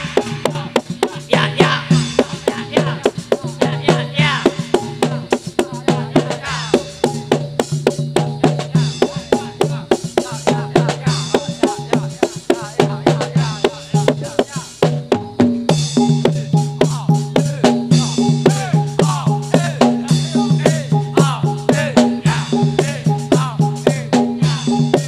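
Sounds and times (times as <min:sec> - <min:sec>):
drums beating sharp strokes: 0:00.0 - 0:25.0
metallophone notes: 0:15.2 - 0:25.0.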